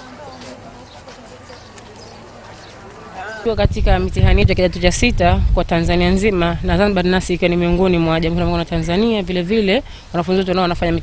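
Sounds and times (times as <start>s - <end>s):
footsteps on gravelly path: 0.0s - 3.5s
faint murmur of voices: 0.0s - 3.7s.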